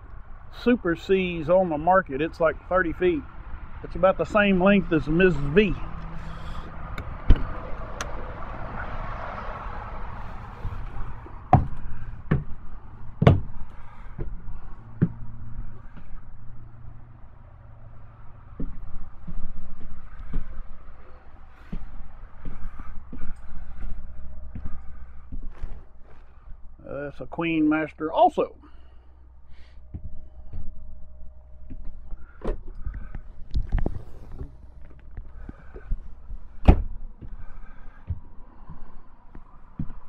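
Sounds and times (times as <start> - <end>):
vehicle passing: 0.2 - 40.0
steady low hum: 9.6 - 40.0
sharp knocks: 13.2 - 13.6.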